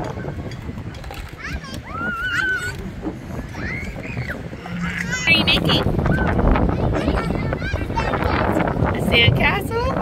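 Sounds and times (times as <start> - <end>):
young children calling out: 1.4 - 8.6.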